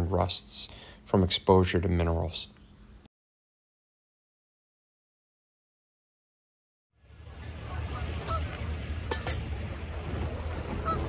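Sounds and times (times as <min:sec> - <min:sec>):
steady low rumble: 0:07.0 - 0:11.0
geese honking: 0:07.3 - 0:08.9, 0:10.4 - 0:11.0.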